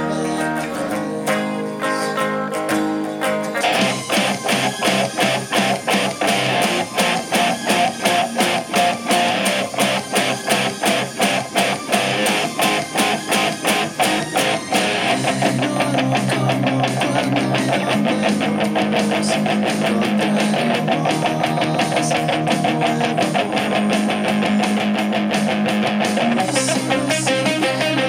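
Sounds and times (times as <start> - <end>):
electric guitar: 0.0 - 28.0
drum beat: 3.7 - 15.1.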